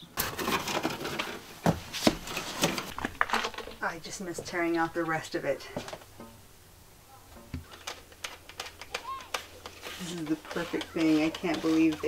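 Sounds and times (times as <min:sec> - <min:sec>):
knocks and scrapes of metal parts: 0:00.0 - 0:06.4, 0:07.3 - 0:12.0.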